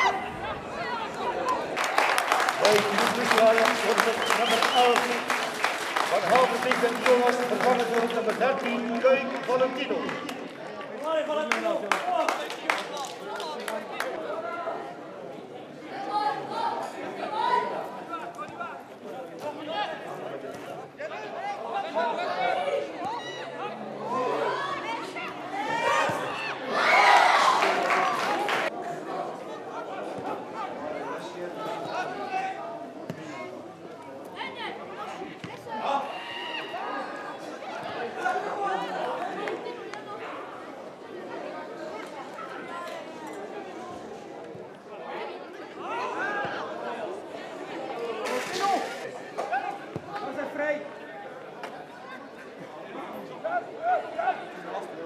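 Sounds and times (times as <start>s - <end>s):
indistinct chatter of voices: 0.0s - 55.0s
spectators talking: 0.0s - 55.0s.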